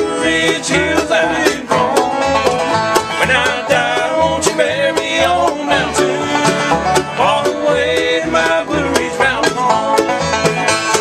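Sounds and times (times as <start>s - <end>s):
banjo: 0.0s - 11.0s
strummed acoustic guitar: 0.0s - 11.0s.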